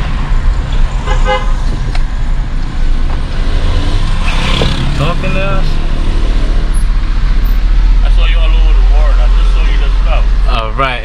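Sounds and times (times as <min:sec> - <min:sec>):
car engine rumble from inside: 0:00.0 - 0:11.0.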